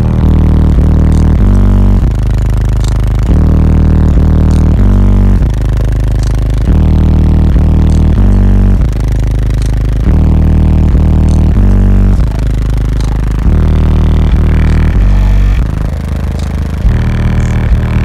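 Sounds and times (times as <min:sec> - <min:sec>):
loud bass-heavy rap music: 0:00.0 - 0:18.0.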